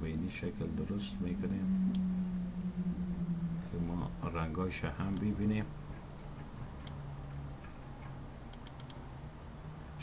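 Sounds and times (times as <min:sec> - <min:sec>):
low steady hum: 0:00.0 - 0:10.0
computer mouse clicking: 0:08.5 - 0:09.0.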